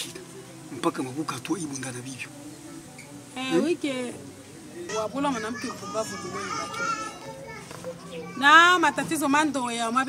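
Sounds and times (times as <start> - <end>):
soft background music: 0.0 - 10.0
children playing: 4.9 - 9.5.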